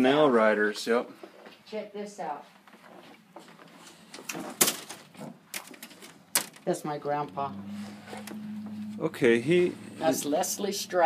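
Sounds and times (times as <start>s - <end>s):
display boards clacking: 4.2s - 6.7s.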